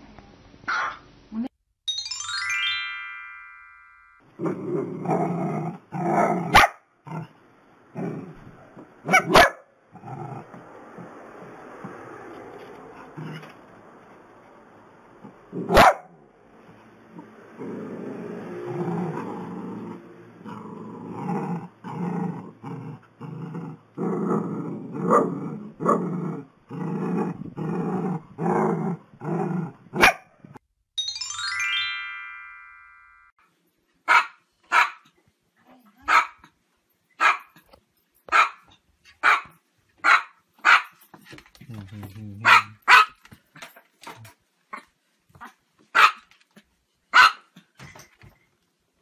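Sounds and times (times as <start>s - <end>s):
dogs barking: 6.5s - 6.8s, 9.0s - 9.7s, 15.7s - 16.2s, 30.0s - 30.4s, 34.1s - 35.0s, 37.2s - 37.6s, 38.3s - 38.6s, 39.2s - 40.9s, 42.4s - 43.2s, 45.9s - 46.3s, 47.2s - 47.6s.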